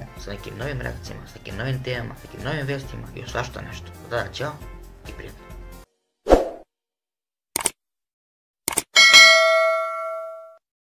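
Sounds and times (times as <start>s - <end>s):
bright bell ding: 9.0s - 10.6s.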